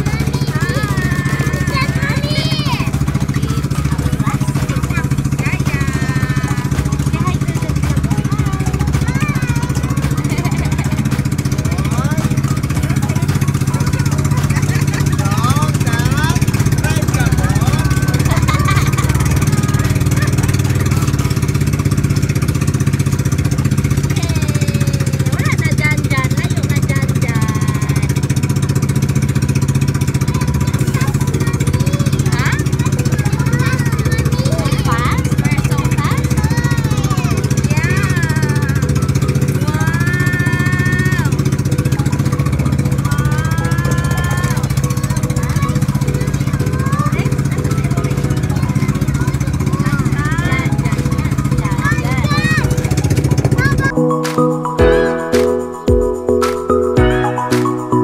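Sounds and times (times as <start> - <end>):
boat engine droning: 0.0 - 58.0.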